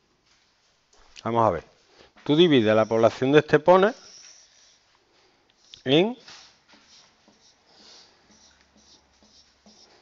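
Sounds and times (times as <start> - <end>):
marker on whiteboard: 2.3 - 4.9, 5.6 - 10.0.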